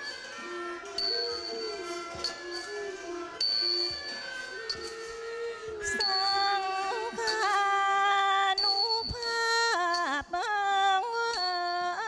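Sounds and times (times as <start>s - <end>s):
small hand cymbals ringing: 3.4s - 5.0s, 8.6s - 10.3s, 11.3s - 12.0s.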